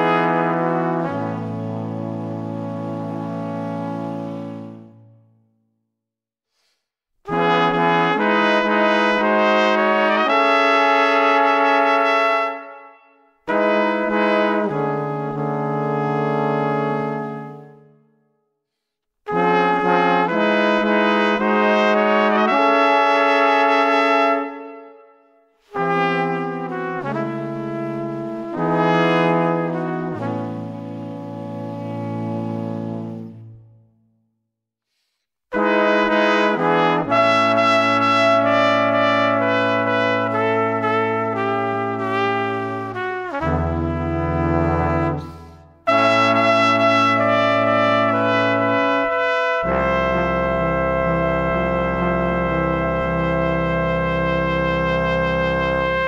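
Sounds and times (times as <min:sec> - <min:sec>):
brass quartet playing chords: 0:00.0 - 0:05.4, 0:07.3 - 0:18.0, 0:19.3 - 0:25.0, 0:25.7 - 0:33.8, 0:35.5 - 0:56.0.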